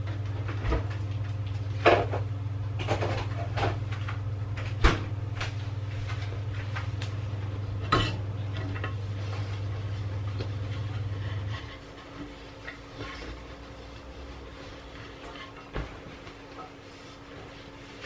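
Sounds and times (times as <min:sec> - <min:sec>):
steady low hum: 0:00.0 - 0:18.0.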